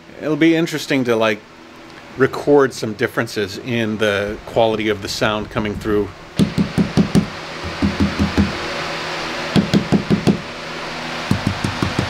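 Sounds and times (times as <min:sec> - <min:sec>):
dull knocks on van panels: 0:06.4 - 0:08.6, 0:09.6 - 0:10.4.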